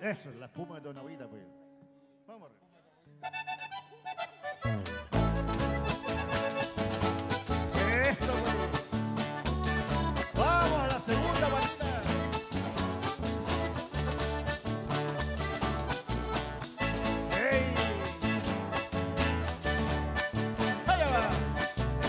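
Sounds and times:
acoustic guitars: 3.2 - 22.0
button accordion: 3.2 - 22.0.

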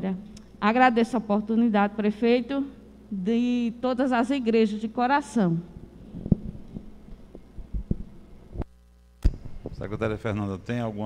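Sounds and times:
microphone handling thumps: 6.0 - 9.9.

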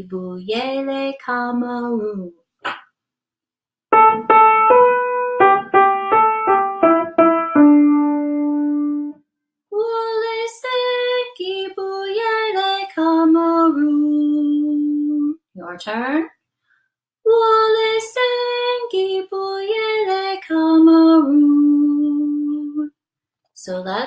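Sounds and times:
woman singing: 0.0 - 2.3, 9.8 - 16.2, 17.3 - 22.9, 23.6 - 24.0
piano melody: 3.9 - 9.2.

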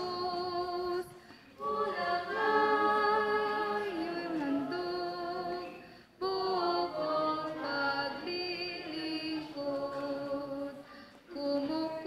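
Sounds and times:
women singing a hymn: 0.0 - 12.0.

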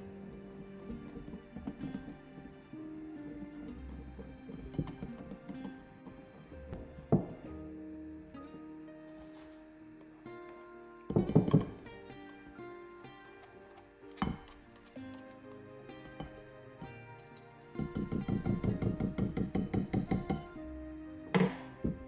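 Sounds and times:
background music: 0.0 - 22.0.

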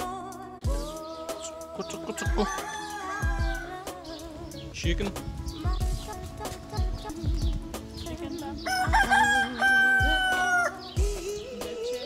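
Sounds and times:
background music with steady beat: 0.0 - 12.0
rooster crowing: 2.2 - 3.8, 8.6 - 10.9.

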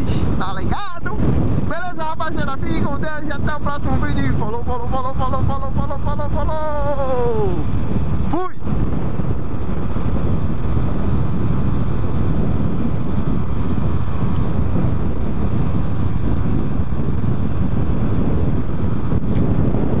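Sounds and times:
motorcycle road noise: 0.0 - 20.0
wind rumble: 0.0 - 20.0.

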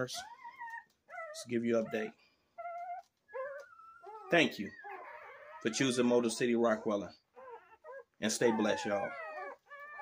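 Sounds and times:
puppies whining: 0.0 - 10.0.

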